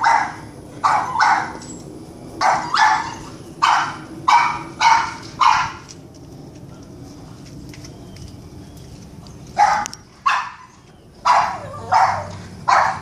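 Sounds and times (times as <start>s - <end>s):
dog barking sharply: 11.3s - 13.0s.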